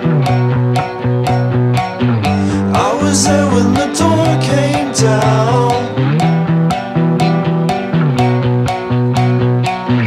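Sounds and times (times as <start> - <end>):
bass guitar sliding notes: 0.0 - 10.0
drum kit beat: 0.0 - 10.0
electric guitars: 0.0 - 10.0.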